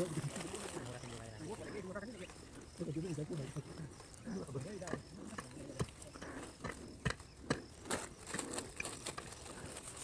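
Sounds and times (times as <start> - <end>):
indistinct voices talking: 0.0 - 9.8.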